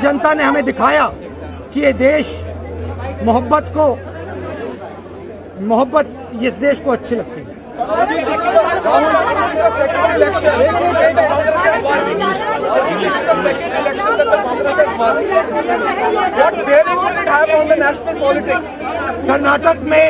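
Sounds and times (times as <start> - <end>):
several voices chattering: 0.0 - 20.0.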